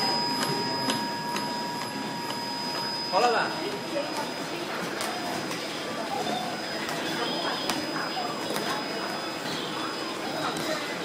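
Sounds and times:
steady machine whine: 0.0 - 11.0.

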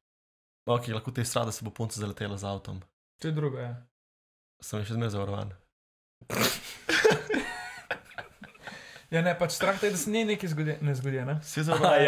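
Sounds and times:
men laughing loudly: 6.6 - 9.0, 11.7 - 12.0.

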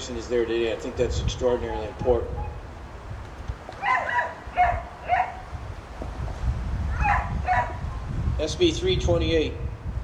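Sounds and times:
dog barking: 3.8 - 5.4, 7.0 - 7.8.

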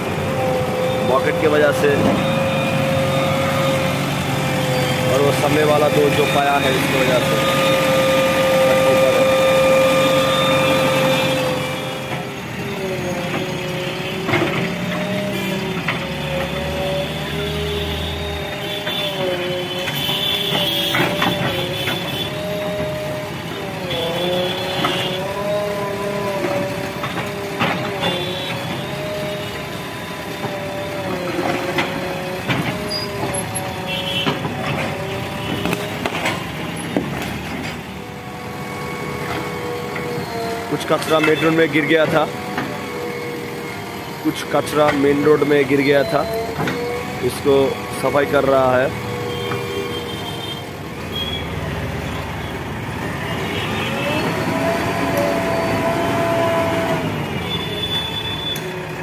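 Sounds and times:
diesel engine revving: 0.0 - 59.0.

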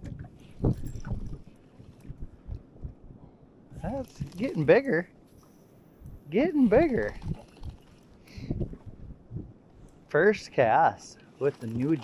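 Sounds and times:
wind buffeting microphone: 0.0 - 4.5, 6.0 - 9.9.

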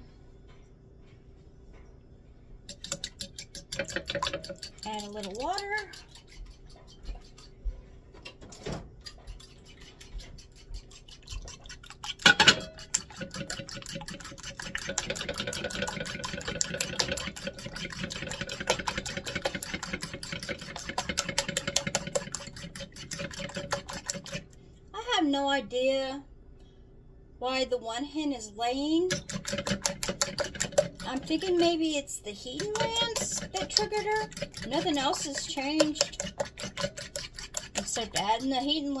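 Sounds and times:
fork beating eggs in bowl: 2.6 - 24.6, 28.6 - 39.0.

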